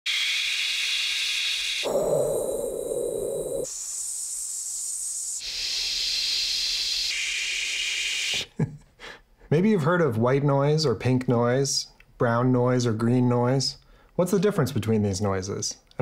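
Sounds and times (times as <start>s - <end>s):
synthesized noise hiss: 0.1s - 8.5s.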